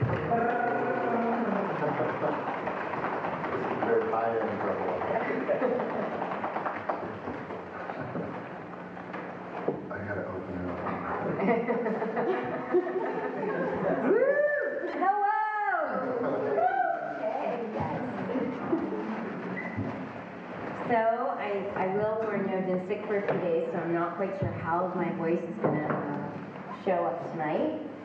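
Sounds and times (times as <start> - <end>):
people talking: 0.0 - 2.5, 3.5 - 6.1, 9.9 - 19.7, 20.8 - 27.8
laughter: 5.1 - 6.3, 10.9 - 14.2.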